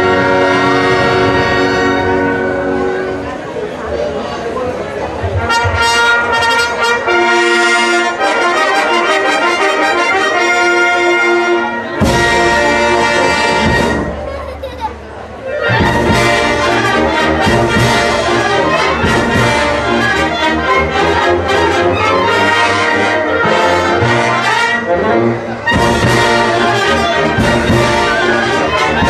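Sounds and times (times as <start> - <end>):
orchestra brass chord: 0.0 - 3.6, 5.4 - 14.3, 15.4 - 29.0
murmuring voices: 0.0 - 29.0.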